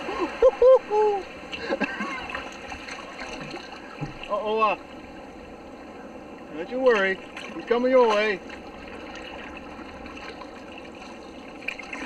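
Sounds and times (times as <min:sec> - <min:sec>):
water lapping against hull: 0:00.0 - 0:12.0.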